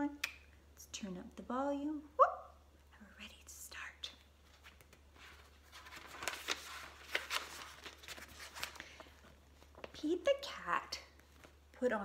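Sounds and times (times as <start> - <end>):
paper rustling: 4.4 - 10.0.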